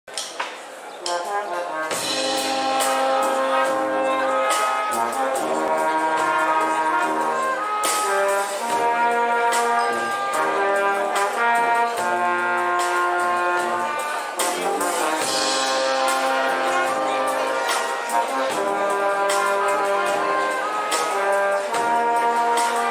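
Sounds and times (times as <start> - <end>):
brass band playing: 0.9 - 22.9
drum kit beat: 1.0 - 22.9.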